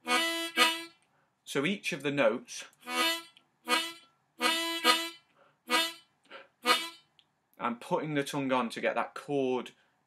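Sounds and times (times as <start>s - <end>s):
blues harmonica notes: 0.0s - 1.0s, 2.8s - 7.1s.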